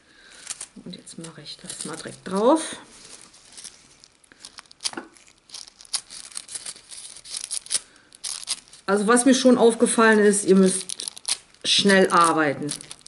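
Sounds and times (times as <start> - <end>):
foil crinkling and rustling: 0.2 - 13.0.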